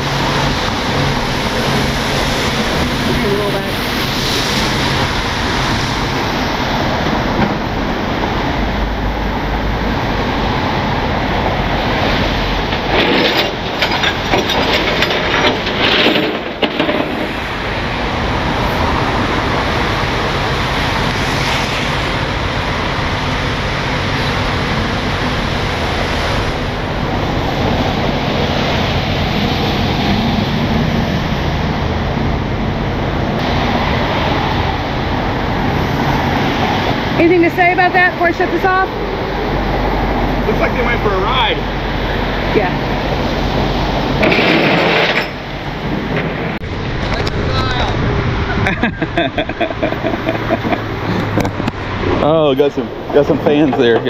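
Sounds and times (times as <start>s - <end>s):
rain on wet street: 0.0s - 14.2s, 16.6s - 48.8s
knocks and clatter: 12.6s - 17.6s, 44.2s - 47.3s.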